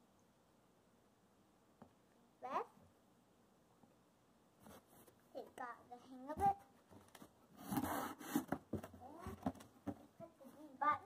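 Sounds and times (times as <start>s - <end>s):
child's quiet voice: 2.4s - 2.8s, 5.3s - 6.7s, 9.0s - 9.5s, 10.2s - 11.0s
cardboard scraping rustle: 4.6s - 5.2s, 6.4s - 10.6s.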